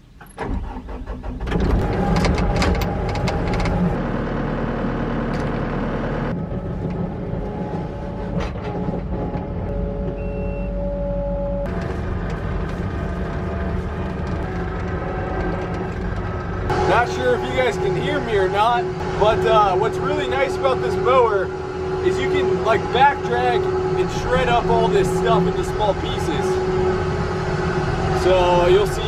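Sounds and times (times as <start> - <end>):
diesel engine running: 0.0 - 29.0.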